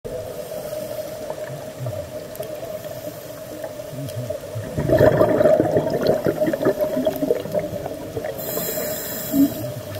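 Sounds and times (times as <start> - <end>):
underwater watery murmur: 0.1 - 9.9.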